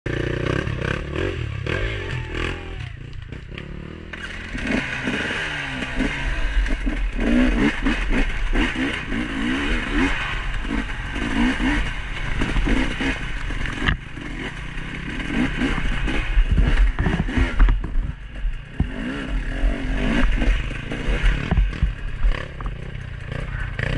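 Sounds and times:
dirt bike engine revving: 0.1 - 23.9.

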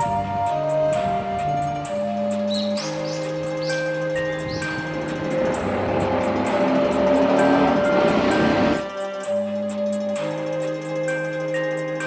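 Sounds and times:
motorcycle passing by: 2.9 - 8.9.

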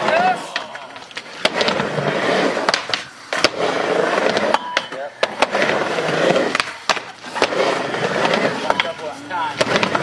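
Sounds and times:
skateboard wheels rolling on ramp: 0.0 - 10.0
skateboard clacking on ramp: 9.6 - 10.0.

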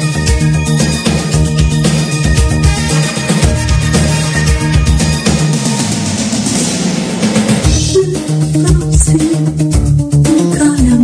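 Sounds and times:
bass: 0.0 - 11.0
drums: 0.0 - 11.0
pop song instrumental: 0.0 - 11.0.

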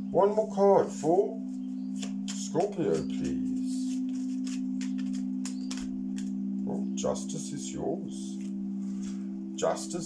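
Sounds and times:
singing bowl drone: 0.0 - 10.0
cards being shuffled: 2.0 - 6.3, 8.4 - 8.6.

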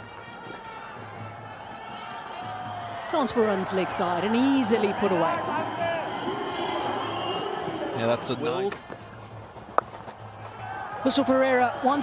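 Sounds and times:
stadium background sound: 0.0 - 12.0.

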